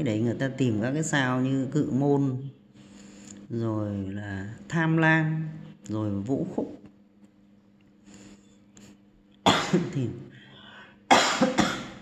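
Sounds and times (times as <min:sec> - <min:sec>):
man coughing: 0:09.4 - 0:10.1, 0:11.1 - 0:12.0.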